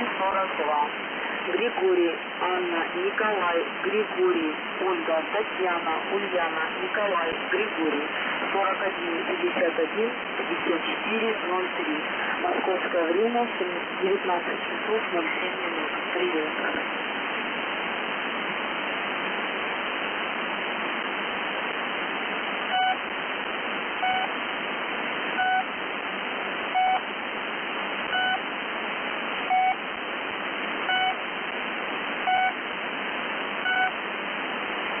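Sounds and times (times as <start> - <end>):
shortwave radio static: 0.0 - 35.0
short beeps: 22.7 - 23.0.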